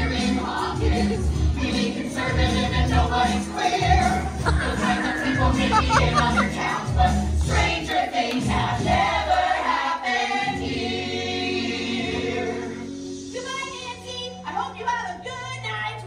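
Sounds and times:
cast singing together: 0.0 - 12.9
backing track: 0.3 - 9.4.

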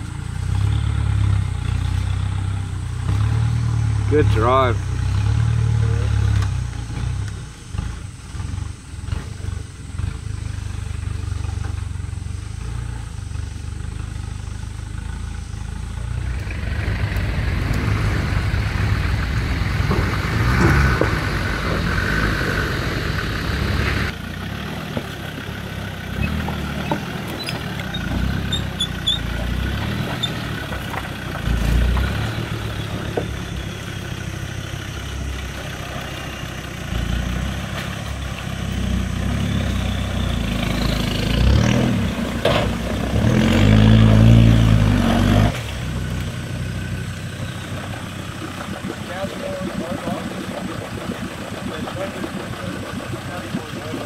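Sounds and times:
diesel engine revving at low speed: 0.0 - 54.0.

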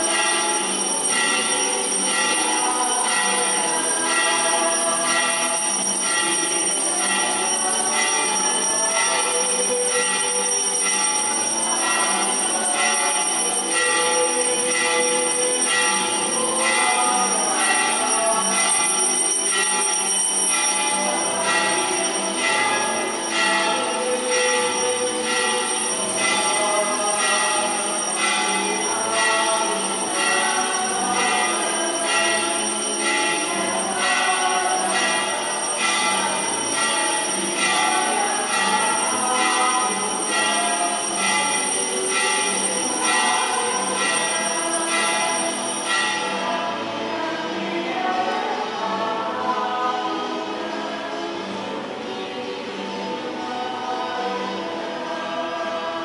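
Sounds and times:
church music with held notes: 0.0 - 56.0.

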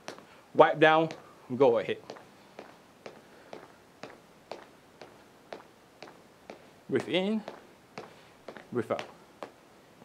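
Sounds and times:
footsteps marching on the spot: 0.0 - 9.6.

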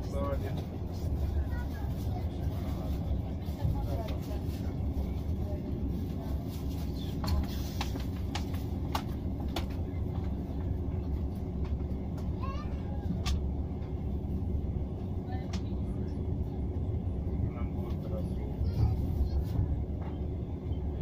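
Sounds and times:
train rumbling inside carriage: 0.0 - 21.0.

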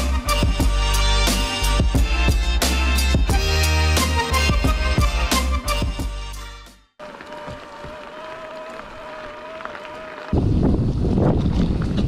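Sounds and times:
bike tyres rolling on gravel: 7.0 - 12.0.

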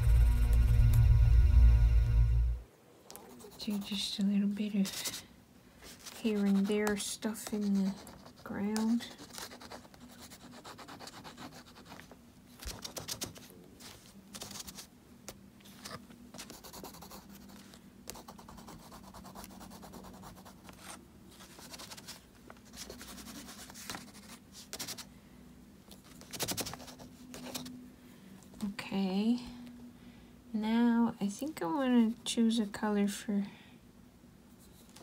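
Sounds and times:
faint low hum: 0.0 - 35.0
crayon scratching on paper: 3.2 - 5.2, 5.8 - 14.9, 15.8 - 25.1, 26.0 - 27.7.

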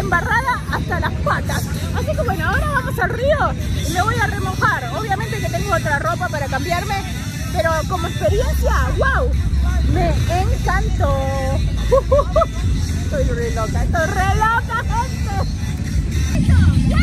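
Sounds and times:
woman talking: 0.0 - 15.4
low rumble: 8.3 - 17.0.

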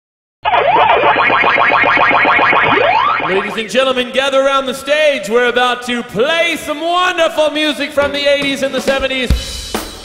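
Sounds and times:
electronic arcade bleeps: 0.4 - 3.7.

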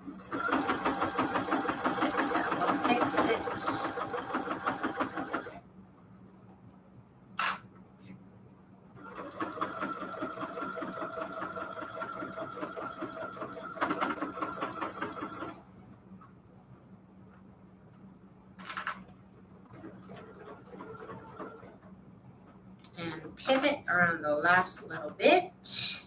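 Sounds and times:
sewing machine stitching: 0.0 - 5.6, 9.0 - 15.6, 19.7 - 21.9.

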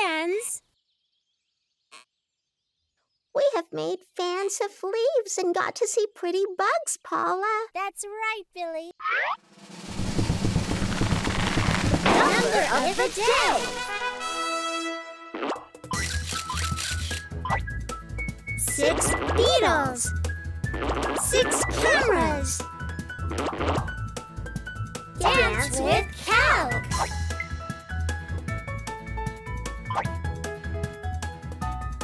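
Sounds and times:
light children's background music: 12.1 - 14.5, 17.3 - 32.0
cartoon pop sound effect: 15.3 - 15.7.

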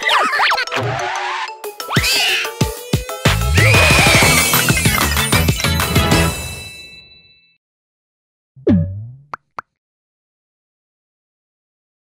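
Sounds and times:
cartoon sound effect: 8.6 - 9.3.

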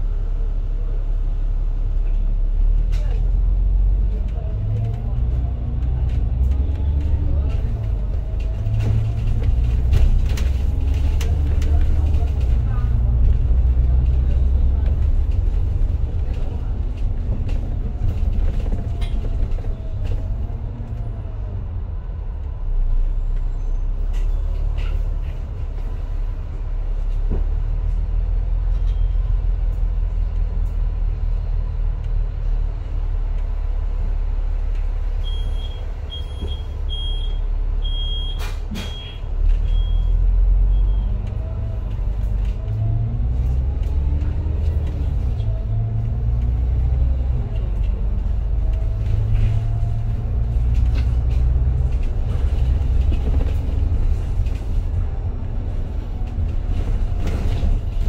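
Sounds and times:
bus engine rumbling: 0.0 - 58.0.

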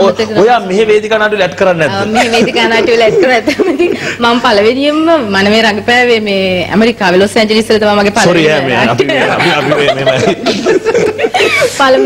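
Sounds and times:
man talking: 8.2 - 10.6
man laughing: 9.0 - 12.0.

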